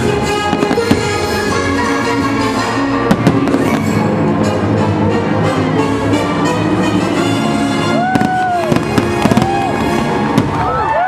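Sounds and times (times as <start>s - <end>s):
fireworks cracks and bangs: 0.0s - 1.4s, 3.1s - 4.2s, 7.9s - 11.0s
orchestral music: 0.0s - 11.0s
crowd cheering: 1.9s - 11.0s.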